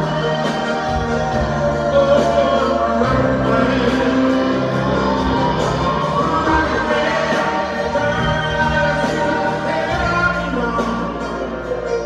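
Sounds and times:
sustained sung vocals: 0.0 - 11.8
live band with piano: 0.0 - 12.0.

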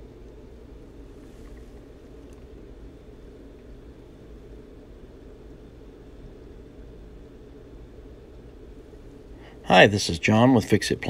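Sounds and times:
room noise rumble and hiss: 0.0 - 11.0.

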